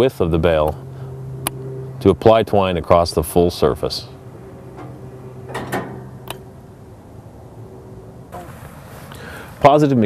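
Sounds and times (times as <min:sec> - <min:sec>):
steady motor hum: 0:00.0 - 0:09.6
mechanical knocks: 0:04.7 - 0:06.5.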